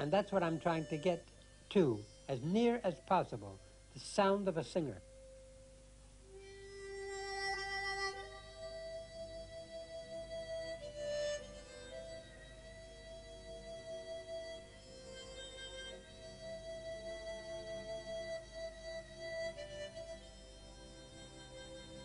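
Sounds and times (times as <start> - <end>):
harmonica playing slow melody: 0.0 - 4.0, 4.9 - 22.0.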